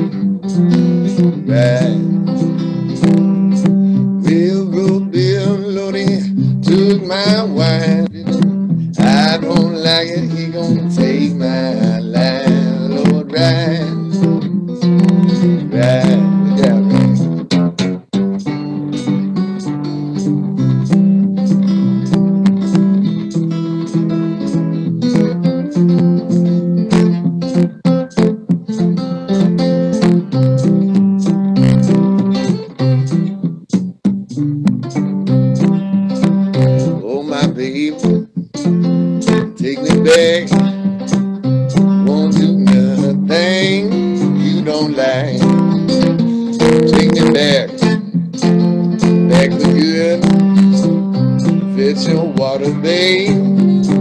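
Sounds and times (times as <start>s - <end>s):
fingerpicked acoustic blues guitar: 0.0s - 54.0s.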